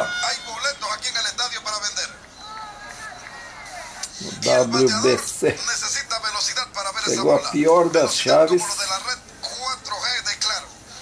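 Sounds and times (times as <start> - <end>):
tinny television commentary: 0.0 - 11.0.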